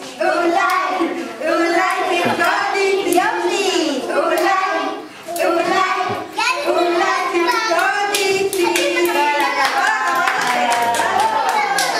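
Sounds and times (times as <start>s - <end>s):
children and woman singing: 0.0s - 11.9s
hand claps: 7.5s - 11.9s.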